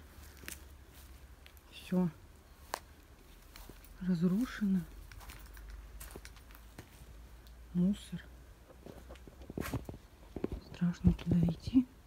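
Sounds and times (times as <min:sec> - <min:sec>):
footsteps on concrete tiles: 0:02.6 - 0:07.1, 0:08.8 - 0:11.4.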